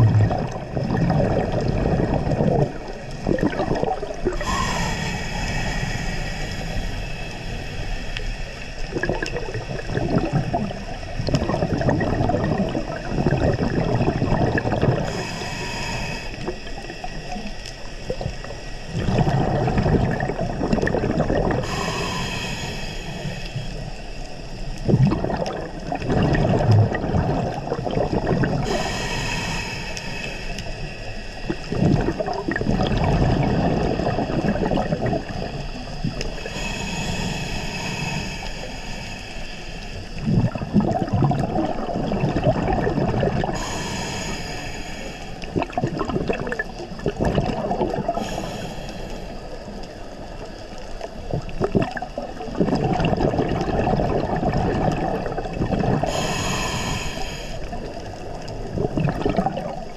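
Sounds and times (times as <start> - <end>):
exhaled air bubbling: 0.0 - 59.9
diver inhaling through regulator: 3.4 - 11.3, 13.2 - 27.6, 28.2 - 41.5, 42.9 - 45.7, 47.7 - 50.2, 53.1 - 58.5.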